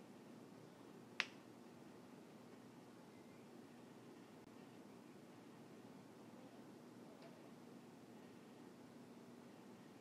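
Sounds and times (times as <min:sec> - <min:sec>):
faint steady background noise: 0:00.0 - 0:10.0.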